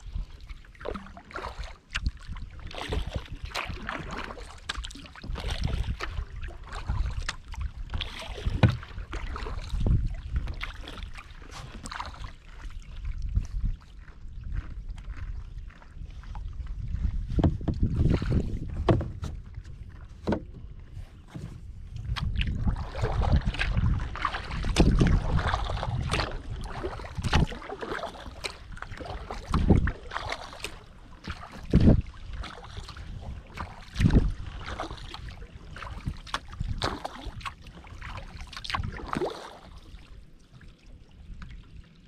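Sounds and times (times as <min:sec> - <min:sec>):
paddle strokes splashing water: 0:00.0 - 0:42.0
wind rumble on microphone: 0:00.0 - 0:42.0
water dripping from paddle: 0:00.1 - 0:15.2, 0:21.9 - 0:42.0.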